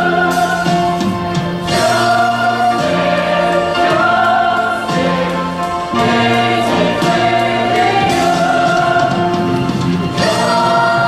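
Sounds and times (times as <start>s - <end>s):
ensemble singing a chorus: 0.0s - 11.0s
instrumental accompaniment with bass line: 0.0s - 11.0s.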